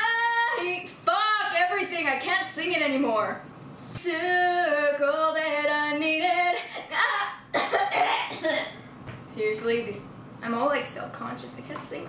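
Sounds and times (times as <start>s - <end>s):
woman singing unaccompanied: 0.0s - 3.3s, 4.0s - 7.5s.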